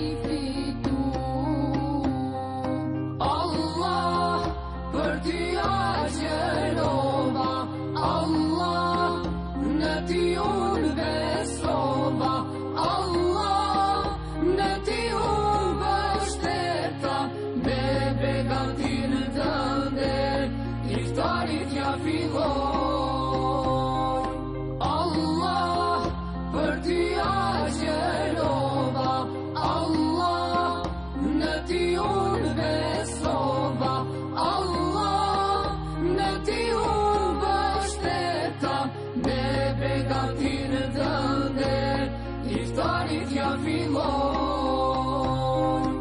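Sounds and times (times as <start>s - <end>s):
person singing devotional song: 0.0s - 46.0s.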